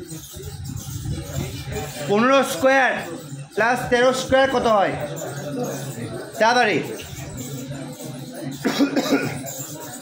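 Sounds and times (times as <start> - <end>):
person coughing: 8.6 - 9.5.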